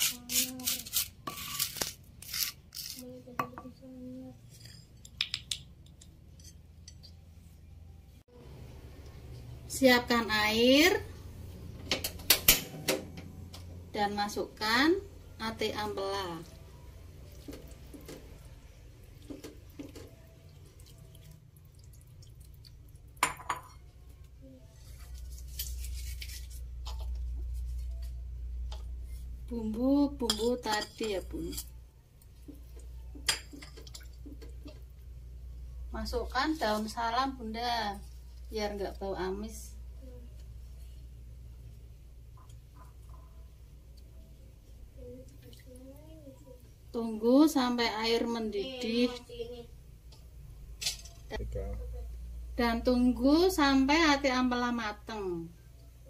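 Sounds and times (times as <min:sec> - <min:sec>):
low steady hum: 0:05.9 - 0:56.0.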